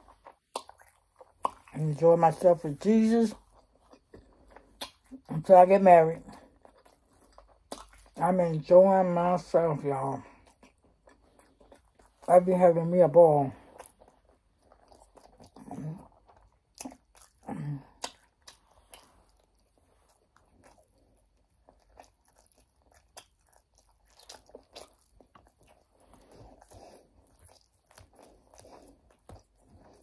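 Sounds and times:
chewing crispy chicken: 0.0s - 30.0s
wet mouth clicks: 0.4s - 1.7s, 3.9s - 5.2s, 7.6s - 8.0s, 16.5s - 19.2s.

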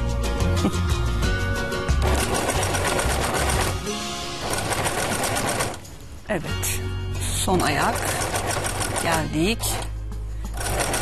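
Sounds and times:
background music: 0.0s - 11.0s
sewing machine stitching: 2.0s - 3.8s, 4.4s - 5.8s, 7.6s - 9.9s, 10.5s - 11.0s.

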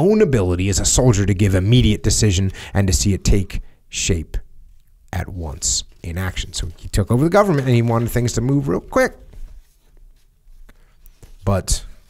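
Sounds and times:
paper sheets rustling: 5.4s - 12.0s.

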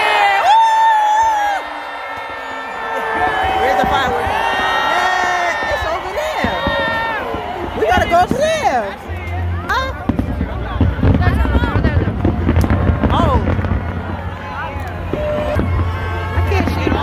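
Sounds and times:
long drawn-out shouts: 0.0s - 10.5s
large crowd cheering and whooping: 0.0s - 17.0s.

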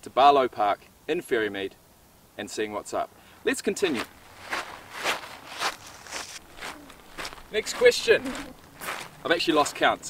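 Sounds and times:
footsteps on gravel trail: 3.9s - 10.0s.

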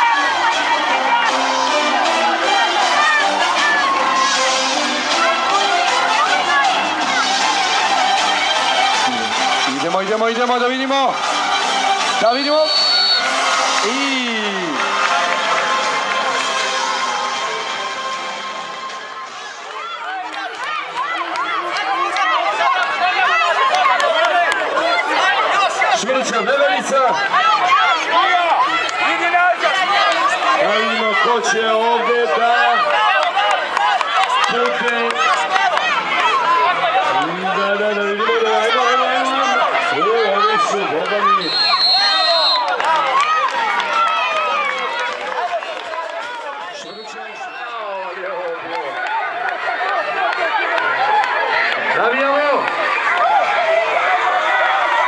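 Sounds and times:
children shouting and cheering: 0.0s - 55.0s.

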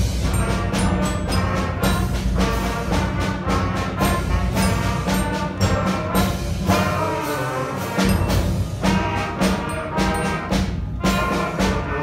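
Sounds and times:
concert band playing chords: 0.0s - 12.0s.

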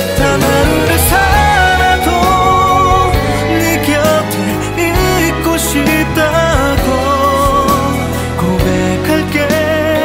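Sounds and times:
pop ballad music: 0.0s - 10.0s.

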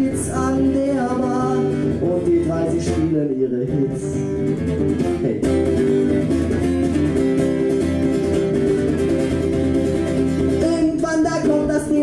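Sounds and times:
man singing: 0.0s - 5.8s, 10.5s - 12.0s
acoustic guitar strumming: 0.0s - 12.0s.

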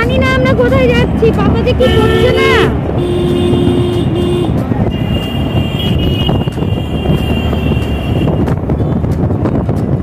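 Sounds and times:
road traffic rumble: 0.0s - 10.0s
vehicle horn: 1.8s - 8.5s.

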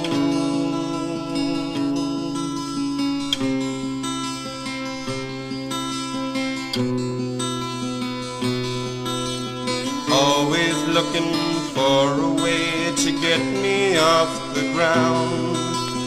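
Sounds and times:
acoustic guitar strumming chords: 0.0s - 16.0s.

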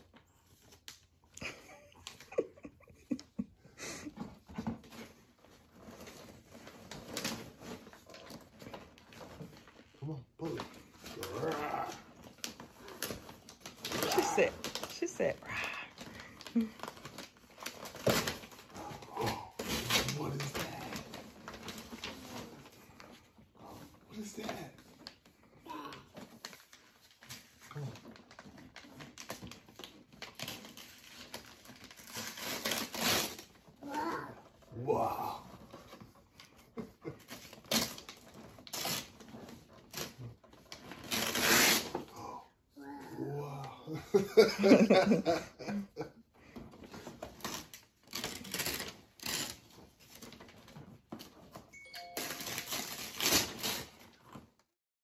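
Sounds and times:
wrapping paper crinkling and tearing: 4.8s - 43.4s, 46.5s - 54.6s.

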